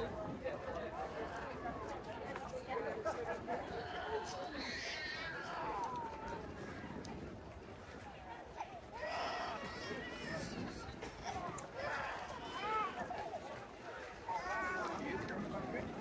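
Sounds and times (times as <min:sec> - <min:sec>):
background chatter of passers-by: 0:00.0 - 0:16.0.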